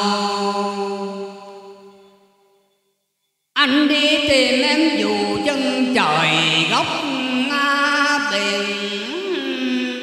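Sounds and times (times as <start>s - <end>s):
man singing a long note: 3.6s - 10.0s.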